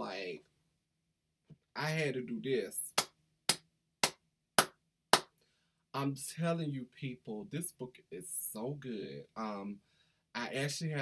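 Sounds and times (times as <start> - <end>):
person clapping hands: 2.9 - 5.4.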